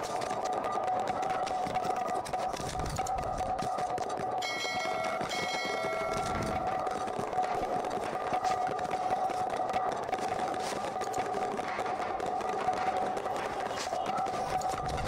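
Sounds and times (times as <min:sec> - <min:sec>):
bright ringing tone: 0:04.4 - 0:06.7.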